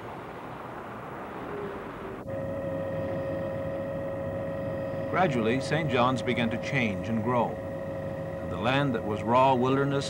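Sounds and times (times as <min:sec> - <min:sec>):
engine drone: 0:00.0 - 0:10.0.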